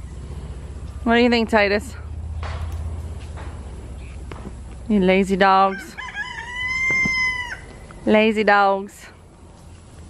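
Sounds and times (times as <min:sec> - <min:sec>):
rooster crowing: 0:05.7 - 0:07.8.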